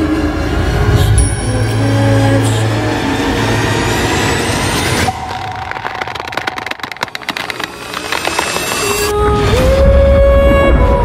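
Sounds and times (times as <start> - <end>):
rapid crackle of clicks: 5.1 - 9.1.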